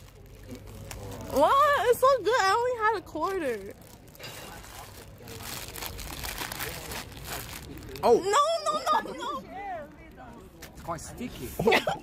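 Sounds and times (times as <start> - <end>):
plastic snack bag crinkling: 0.0 - 10.4.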